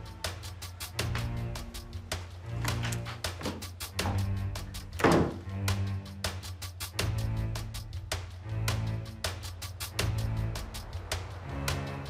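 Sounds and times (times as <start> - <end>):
percussive beat: 0.0 - 11.8
heavy thump: 5.0 - 5.5.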